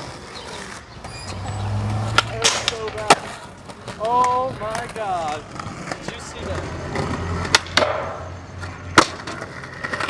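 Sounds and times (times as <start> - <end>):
skateboard wheels rolling on pavement: 0.0 - 10.0
skateboard clacks: 1.9 - 10.0.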